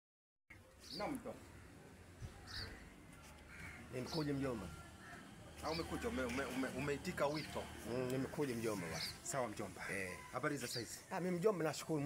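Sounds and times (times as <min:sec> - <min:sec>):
bird cawing: 0:01.2 - 0:10.5.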